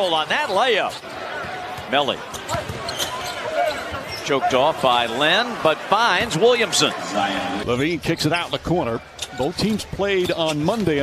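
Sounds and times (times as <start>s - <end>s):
crowd murmur: 1.0s - 7.9s
basketball bouncing on court: 1.4s - 4.2s.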